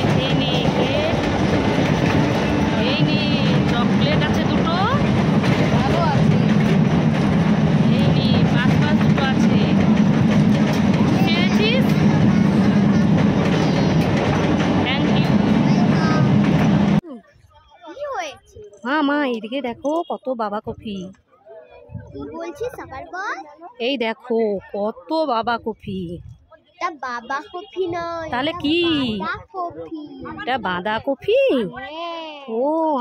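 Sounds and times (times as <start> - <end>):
faint voices: 0.0 - 20.0.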